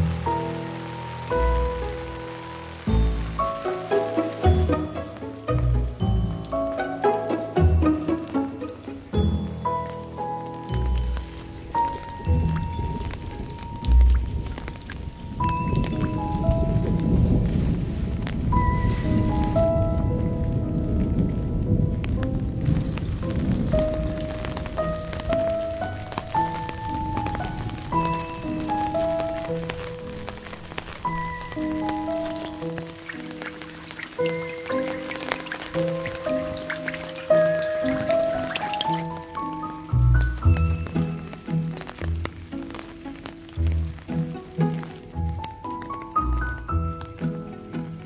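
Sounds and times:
rain pattering on garden surfaces: 0.0 - 48.0
soft melodic music: 0.0 - 48.0.

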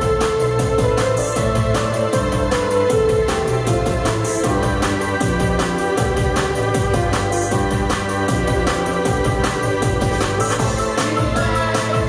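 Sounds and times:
electric bass: 0.0 - 12.0
programmed drum beat: 0.0 - 12.0
synth keyboard chords: 0.0 - 12.0.

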